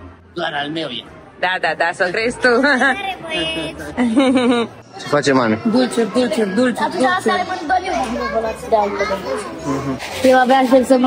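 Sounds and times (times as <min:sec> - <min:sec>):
children talking: 0:02.3 - 0:11.0.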